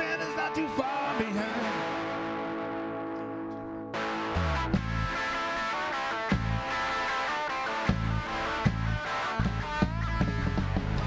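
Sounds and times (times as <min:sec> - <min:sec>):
bass guitar: 0:00.0 - 0:11.0
electric guitars: 0:00.0 - 0:11.0
drum kit: 0:04.0 - 0:07.0, 0:07.7 - 0:11.0.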